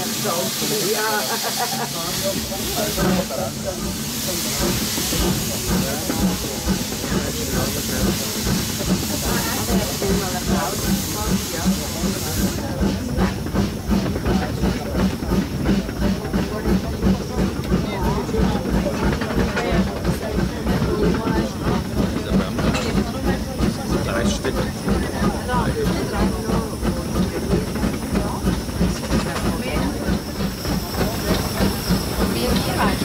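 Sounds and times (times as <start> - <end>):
steam locomotive hiss: 0.0 - 33.0
locomotive exhaust beats: 2.1 - 33.0
running clatter: 2.4 - 33.0.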